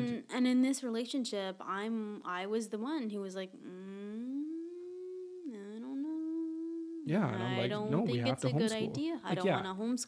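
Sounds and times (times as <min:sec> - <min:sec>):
person humming: 0:00.0 - 0:00.3, 0:03.7 - 0:09.6.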